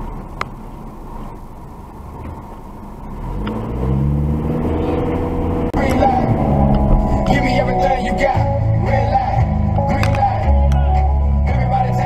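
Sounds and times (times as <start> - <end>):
car engine accelerating: 0.0 - 12.0
road rumble: 0.0 - 12.0.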